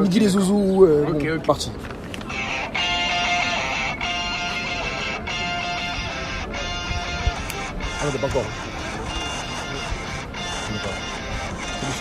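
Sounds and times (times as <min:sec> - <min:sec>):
theme music from phone speaker: 0:02.3 - 0:12.0.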